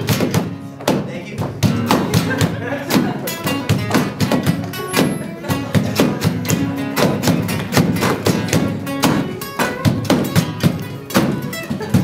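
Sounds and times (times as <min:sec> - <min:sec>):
guitar case slapped as drum: 0:00.0 - 0:03.1, 0:03.7 - 0:05.2, 0:05.8 - 0:12.0
acoustic guitars strummed: 0:00.0 - 0:12.0.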